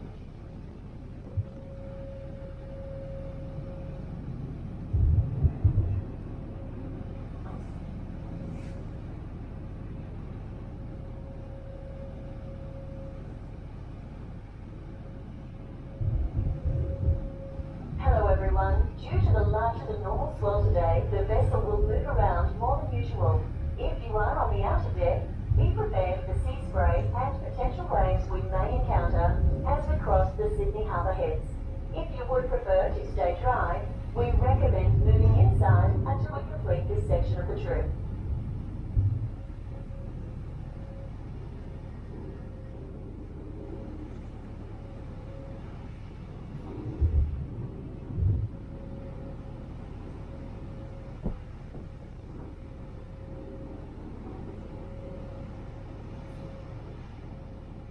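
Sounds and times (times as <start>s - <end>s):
faint steady hum: 0.0s - 57.9s
ferry engine drone: 0.0s - 57.9s
low bumps: 4.8s - 9.6s, 15.8s - 40.6s, 46.5s - 49.3s, 51.0s - 55.2s.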